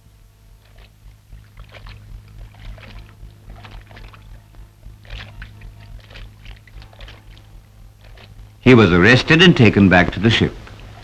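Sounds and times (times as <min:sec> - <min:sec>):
steady low hum: 0:00.0 - 0:11.0
water splashing from swimming: 0:00.5 - 0:08.8.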